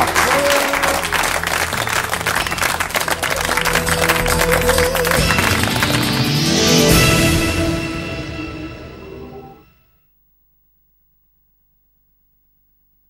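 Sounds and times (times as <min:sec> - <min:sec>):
audience applauding: 0:00.0 - 0:07.8
theme music: 0:00.0 - 0:09.8.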